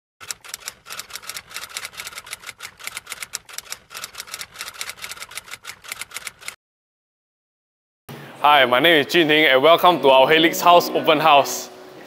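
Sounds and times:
keystroke clicks: 0.2 - 6.6.

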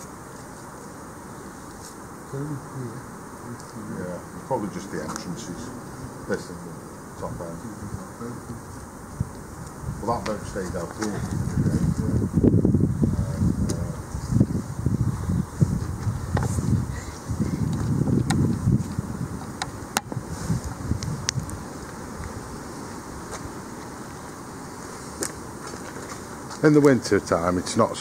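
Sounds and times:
wind buffeting microphone: 7.2 - 28.0.

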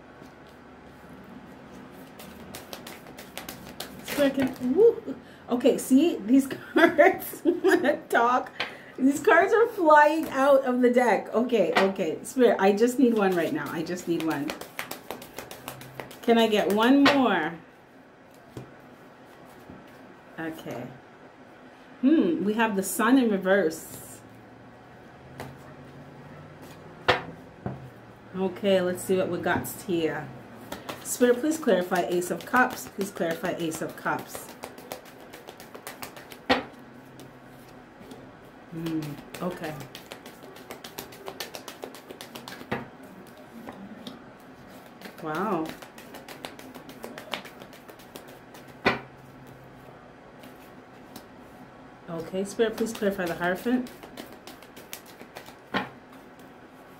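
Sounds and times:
playing cards shuffling: 1.7 - 4.8, 13.0 - 16.8, 30.7 - 38.2, 38.8 - 49.6, 50.4 - 51.3, 52.6 - 56.5.

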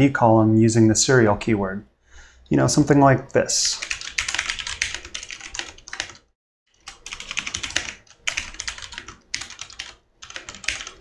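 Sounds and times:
typing on computer keyboard: 3.8 - 11.0.

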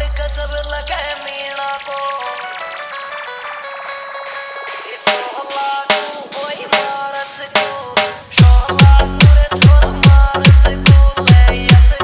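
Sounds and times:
melodic instrumental line: 0.0 - 12.0
heavy drum beat: 5.0 - 12.0.

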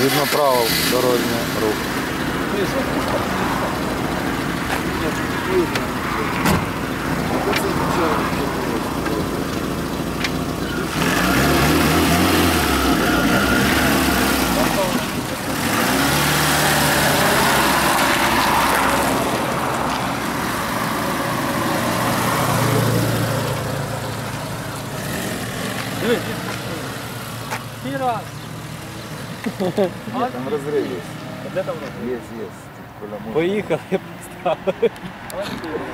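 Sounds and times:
car engine revving and accelerating: 0.0 - 32.5
tyres on gravel road noise: 0.0 - 35.9.

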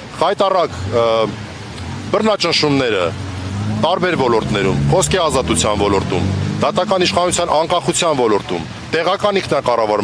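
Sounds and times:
man speaking: 2.1 - 10.0.

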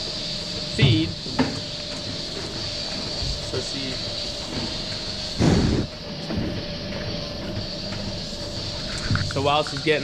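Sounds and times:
milking machinery hum: 0.0 - 10.0.

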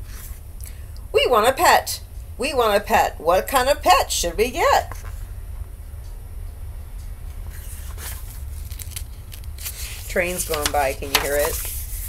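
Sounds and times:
book page clicks and rustles: 7.5 - 12.0.

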